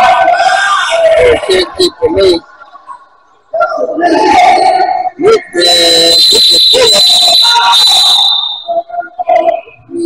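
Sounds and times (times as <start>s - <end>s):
referee's whistle long shrill blast: 5.6s - 8.8s.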